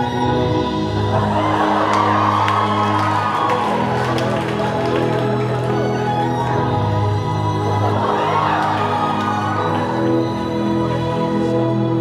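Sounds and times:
music with slow held notes: 0.0 - 12.0
audience cheering and shouting: 1.0 - 10.8.

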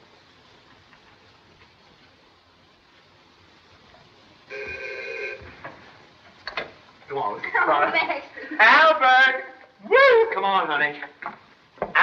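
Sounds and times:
electric bell ringing: 4.5 - 5.4.

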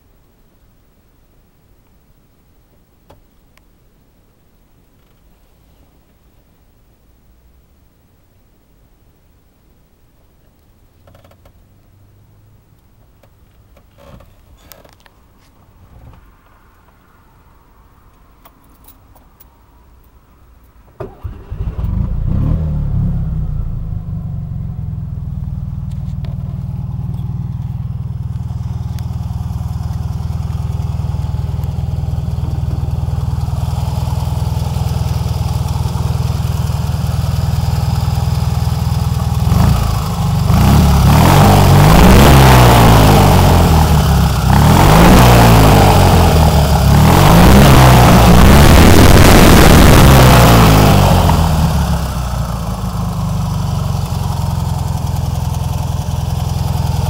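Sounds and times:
car engine starting and idling: 11.0 - 57.0
engine revving: 21.0 - 26.4, 39.0 - 52.7.

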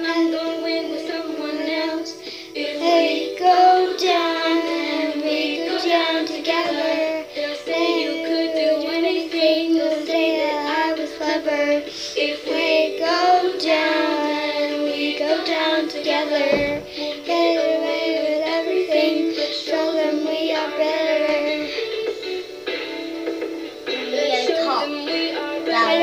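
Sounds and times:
girl singing: 0.0 - 22.5, 23.9 - 26.0.

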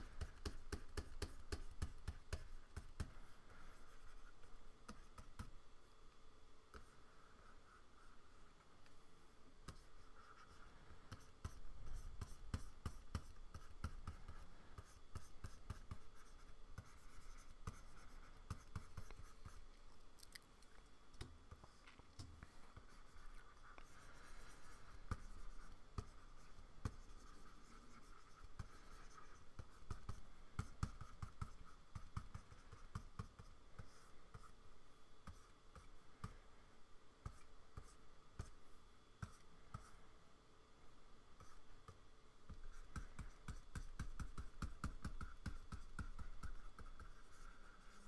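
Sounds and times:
stylus tapping and stroking on screen: 0.0 - 36.5, 37.2 - 40.1, 41.4 - 48.0.

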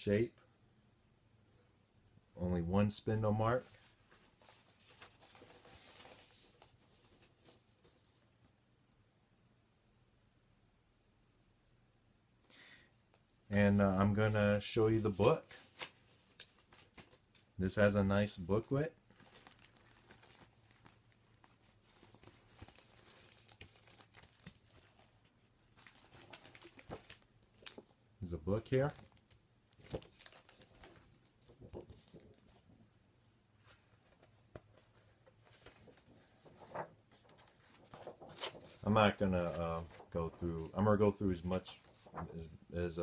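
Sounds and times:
paper and card rustling: 3.6 - 8.2, 13.6 - 32.8, 33.6 - 42.6
plastic sleeve crinkling: 18.7 - 28.0, 28.6 - 32.4, 34.1 - 42.4.

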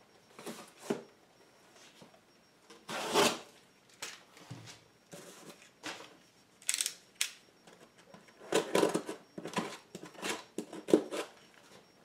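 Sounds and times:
cardboard box scraping on table: 2.9 - 3.5.

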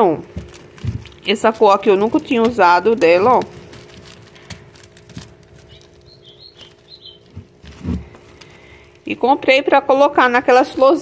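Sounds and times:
plastic wrapping rustling: 0.0 - 9.2, 10.4 - 11.0
faint steady hum: 0.0 - 11.0
bird chirping: 5.6 - 7.6.

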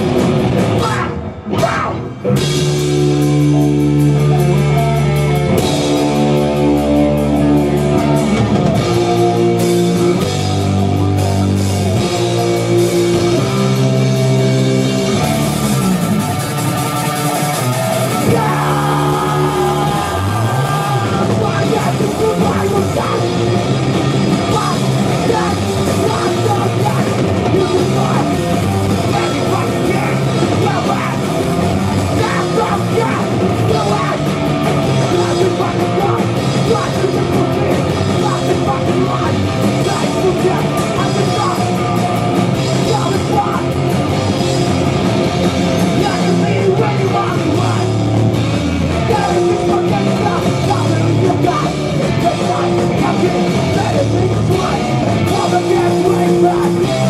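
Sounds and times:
bass guitar: 0.0 - 57.0
distorted electric guitars: 0.0 - 57.0
drum kit: 0.0 - 57.0
person singing: 17.8 - 23.7, 24.4 - 44.0, 45.9 - 48.1, 48.9 - 57.0.

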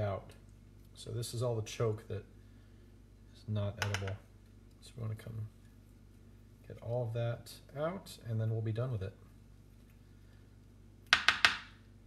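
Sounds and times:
spoon tapping plastic cutting board: 3.8 - 4.2, 11.1 - 11.7.

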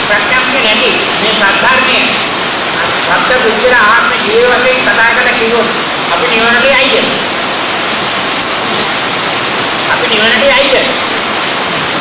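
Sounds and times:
man's voice: 0.0 - 2.2, 2.8 - 7.2, 9.9 - 11.0
recording hiss: 0.0 - 12.0.

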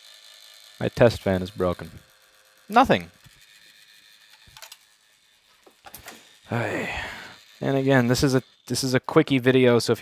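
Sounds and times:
faint clatter of small clicks: 4.3 - 4.8.

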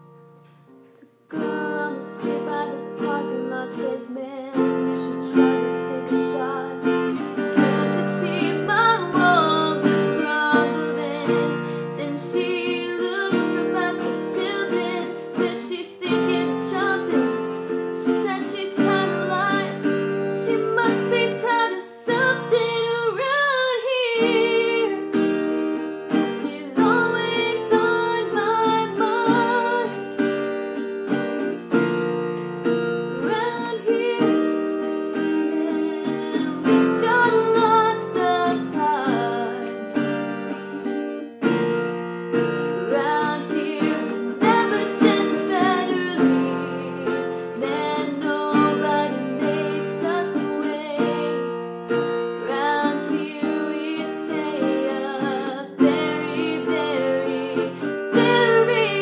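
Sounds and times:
acoustic guitar strumming: 0.0 - 59.0
woman singing: 1.3 - 30.4, 32.7 - 41.8, 42.4 - 59.0.

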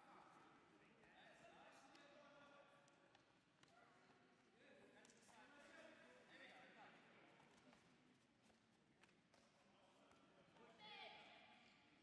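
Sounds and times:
faint hall ambience: 0.0 - 12.0.

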